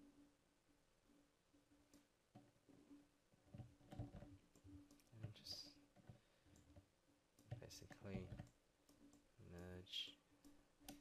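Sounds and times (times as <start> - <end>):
mouse and keyboard clicks: 3.5 - 9.8, 10.4 - 11.0.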